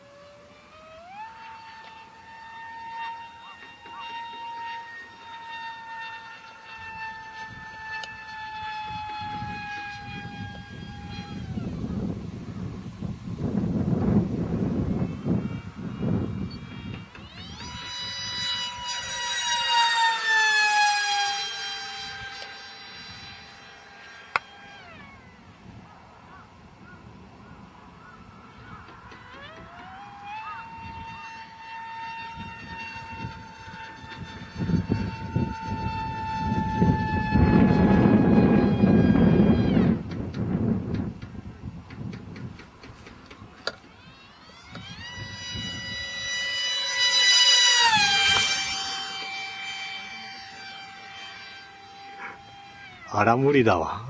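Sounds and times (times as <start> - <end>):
wind rumble on microphone: 0.0 - 50.8
high-pitched electric motor whine: 0.0 - 54.0.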